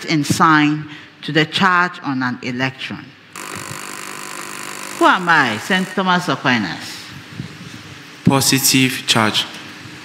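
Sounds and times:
harsh electronic buzzer: 3.4s - 6.0s.

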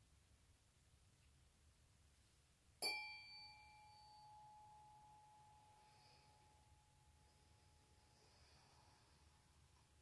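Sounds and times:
tuning forks ringing: 2.8s - 8.0s.

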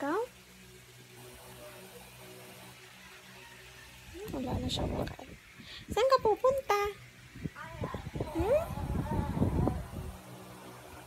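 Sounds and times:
electric fan humming: 0.0s - 11.0s.

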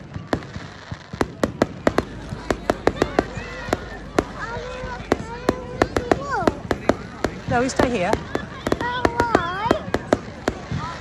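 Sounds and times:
fireworks bangs and crackles: 0.0s - 11.0s.

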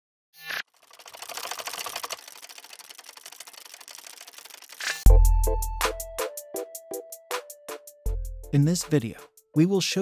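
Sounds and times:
rapid mechanical clicks: 0.6s - 5.1s.

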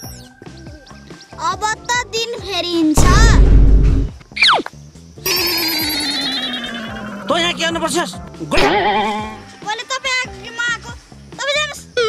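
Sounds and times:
falling whistle-like glide: 5.3s - 7.3s
rapid electronic trill: 5.3s - 8.0s.

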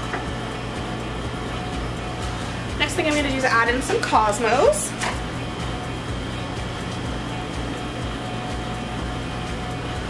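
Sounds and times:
air conditioner humming: 0.0s - 10.0s
refrigerator humming: 0.0s - 10.0s.

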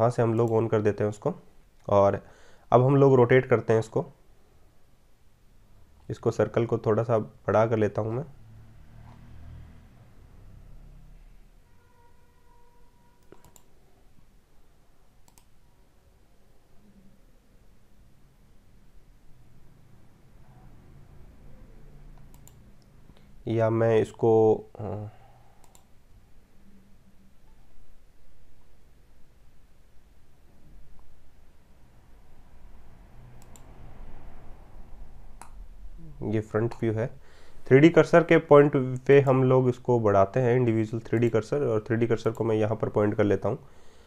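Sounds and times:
faint low hum: 0.0s - 44.0s
faint computer mouse clicks: 13.2s - 13.7s, 15.2s - 15.6s, 22.2s - 23.3s, 25.6s - 25.9s, 33.4s - 33.7s.

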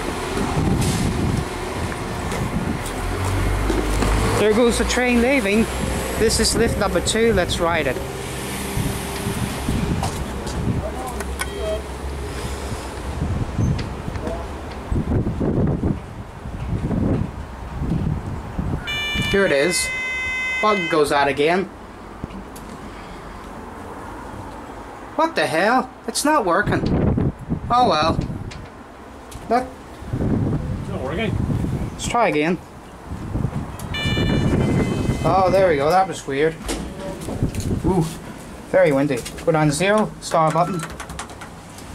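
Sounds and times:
diesel train pulling out: 0.0s - 10.4s, 11.4s - 13.8s
wind gusts on microphone: 0.0s - 11.3s, 12.0s - 19.4s, 26.6s - 29.0s, 29.9s - 39.5s
elevator electronic chime: 11.4s - 11.9s, 18.8s - 21.2s, 33.9s - 35.5s.

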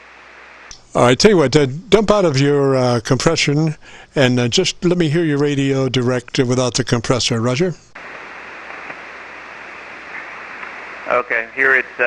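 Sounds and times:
radio static hiss: 0.0s - 0.7s, 8.0s - 12.0s.

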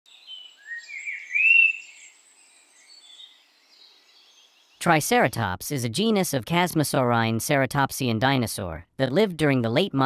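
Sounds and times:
birds chirping: 0.1s - 5.0s
rising whistled bird notes: 0.2s - 4.6s.

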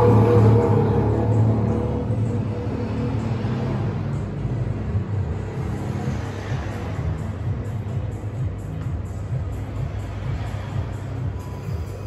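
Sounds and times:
ceiling fan rumbling: 0.0s - 5.6s
muffled background music: 0.0s - 12.0s.

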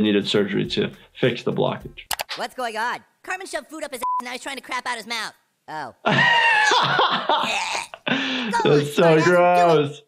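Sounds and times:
cartoon voice gagging and retching: 7.4s - 8.0s.

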